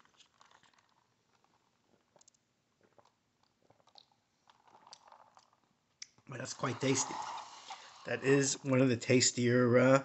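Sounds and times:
mouth sounds sipping a drink: 6.4s - 8.8s.

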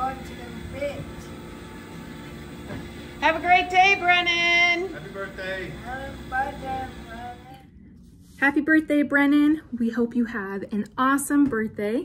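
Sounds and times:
constant hum: 0.0s - 11.0s.

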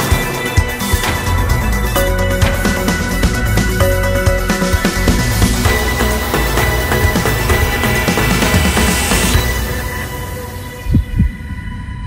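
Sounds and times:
news theme music: 0.0s - 11.6s
deep bass thumps: 0.1s - 10.1s
low rumble under held tones: 1.0s - 12.0s.

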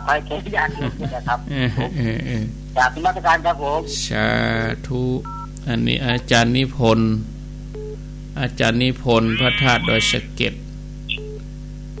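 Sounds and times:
man speaking over phone line: 8.4s - 10.6s.

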